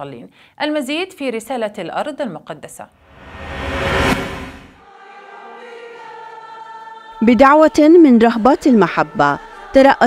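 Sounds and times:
whoosh transition effect: 3.0 - 4.8
choir singing sustained chord: 3.0 - 7.2.

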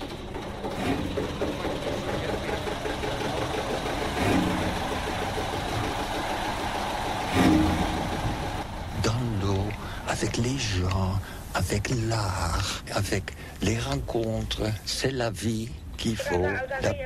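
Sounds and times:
engine running: 0.0 - 14.7.

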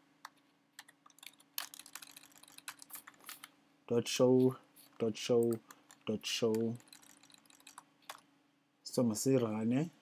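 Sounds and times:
computer keyboard typing: 0.2 - 3.5, 5.0 - 8.2.

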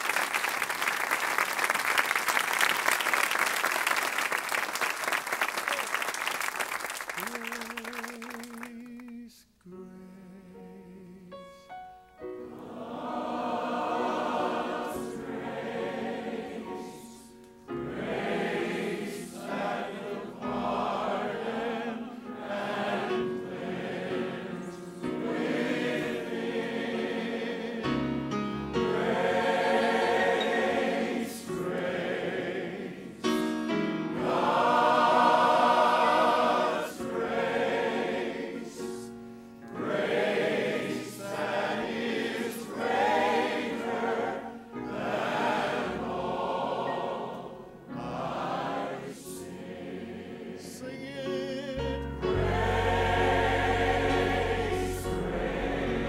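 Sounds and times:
choir singing a hymn: 12.2 - 56.0.

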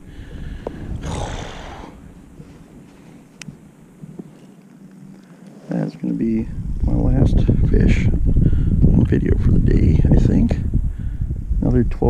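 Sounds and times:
wind rumble on microphone: 0.0 - 4.5, 5.8 - 12.0
jacket and hands rustling: 0.7 - 6.0.

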